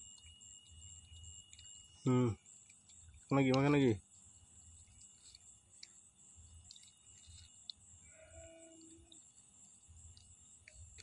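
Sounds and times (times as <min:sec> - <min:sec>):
crickets chirring: 0:00.0 - 0:11.0
faint tone: 0:08.0 - 0:09.2.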